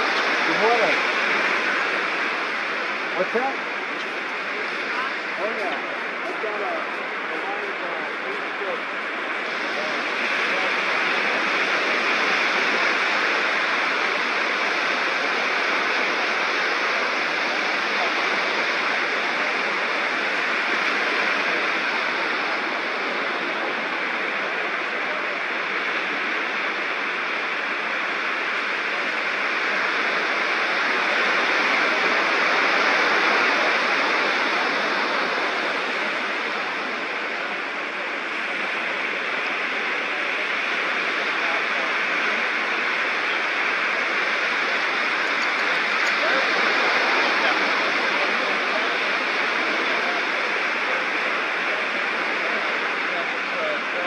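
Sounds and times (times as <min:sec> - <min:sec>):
ocean surf washing on beach: 0:00.0 - 0:54.0.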